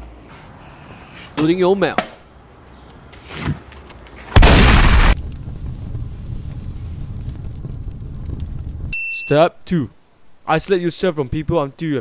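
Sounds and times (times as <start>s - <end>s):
paper burning with crackles: 4.4s - 9.0s.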